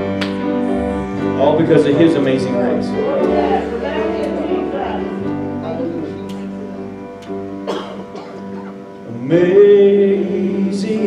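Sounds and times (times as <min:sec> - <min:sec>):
electric guitar: 0:00.0 - 0:11.0
worship band playing softly: 0:00.0 - 0:11.0.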